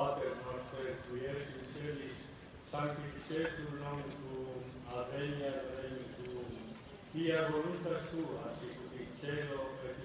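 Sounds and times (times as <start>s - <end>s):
voices reciting a prayer: 0.0s - 10.0s.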